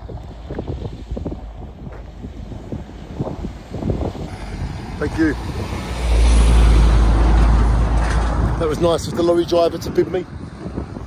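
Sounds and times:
lorry passing with low rumble: 0.0s - 11.0s.

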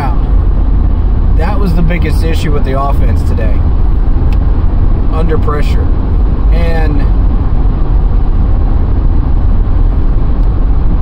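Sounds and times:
car cabin road and engine rumble: 0.0s - 11.0s.

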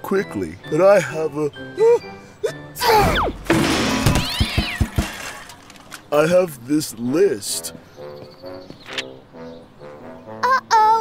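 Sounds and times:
cartoon tyre bouncing thumps: 3.0s - 5.2s.

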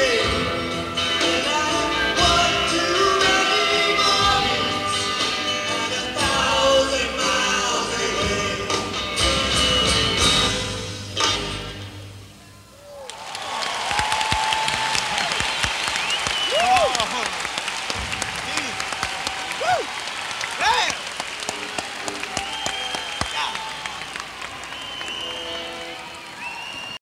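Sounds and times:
audience applauding and cheering: 12.8s - 27.0s
shouts and whistles: 14.2s - 17.3s, 19.3s - 21.0s, 22.2s - 27.0s.

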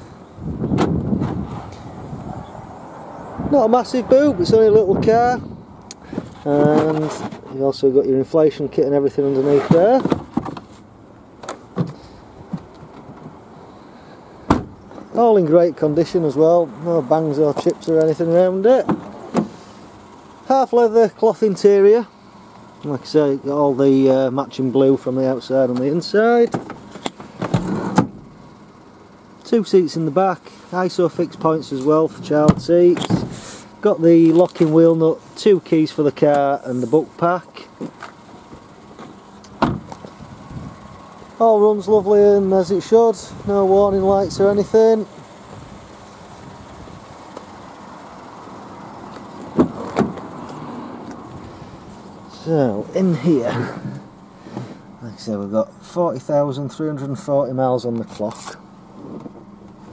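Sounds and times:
car door thump: 0.6s - 1.6s, 11.4s - 13.4s, 14.4s - 15.1s, 18.8s - 19.6s, 26.5s - 28.3s, 32.4s - 33.4s, 37.8s - 40.1s, 49.4s - 50.3s
car boot cover knocks and clicks: 9.7s - 10.7s, 14.5s - 14.8s, 26.5s - 28.2s, 39.0s - 40.1s, 49.5s - 50.3s.

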